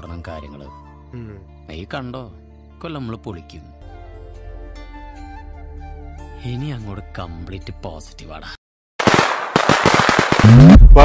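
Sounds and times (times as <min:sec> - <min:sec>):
firecrackers popping: 0:09.0 - 0:11.0.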